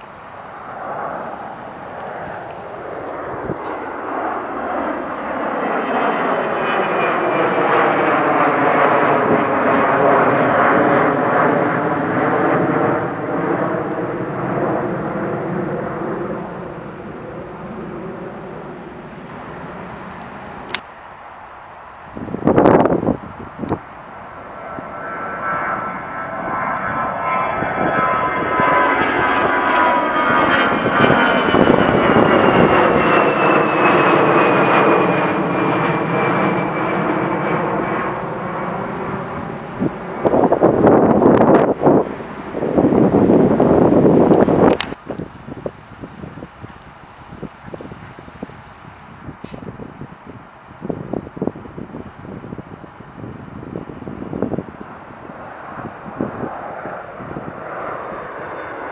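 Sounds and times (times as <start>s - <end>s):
high whining jet engines: 0.0s - 58.9s
jet engines overhead: 0.0s - 58.9s.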